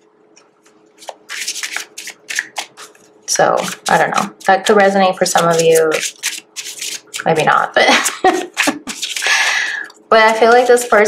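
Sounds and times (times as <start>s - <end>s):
cards being shuffled: 0.4s - 9.5s.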